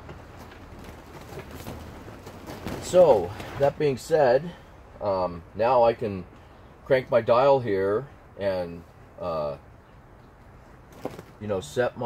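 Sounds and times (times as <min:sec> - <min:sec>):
man speaking: 0:02.8 - 0:06.3, 0:06.9 - 0:09.6, 0:11.4 - 0:12.0.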